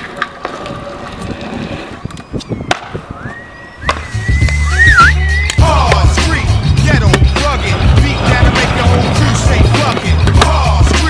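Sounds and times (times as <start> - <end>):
scooter wheels rolling on concrete: 0.0 - 4.6, 5.6 - 11.0
hip-hop backing track: 3.9 - 11.0.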